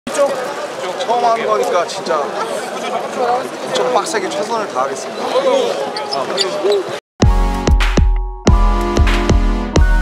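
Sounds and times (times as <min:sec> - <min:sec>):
crowd chatter: 0:00.1 - 0:07.0.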